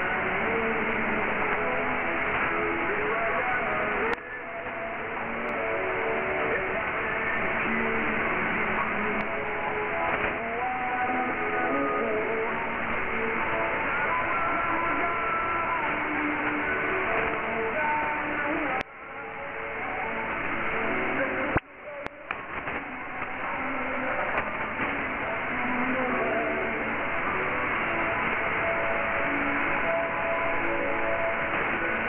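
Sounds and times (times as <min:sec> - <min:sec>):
music on shortwave radio: 0:00.0 - 0:32.0
radio static hiss: 0:00.0 - 0:32.0.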